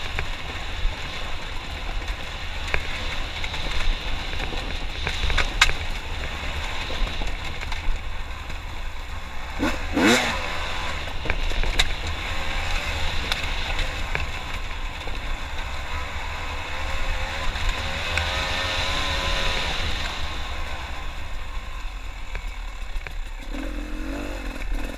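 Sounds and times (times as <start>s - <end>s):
dirt bike engine under load: 0.0s - 24.9s
wind rumble on microphone: 0.0s - 24.9s.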